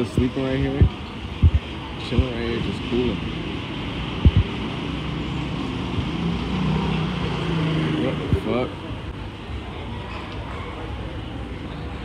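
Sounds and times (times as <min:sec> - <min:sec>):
city street noise: 0:00.0 - 0:12.0.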